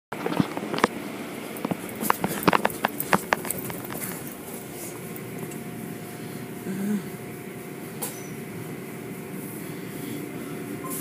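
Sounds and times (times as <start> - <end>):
sharp clicks and knocks: 1.6 - 4.4.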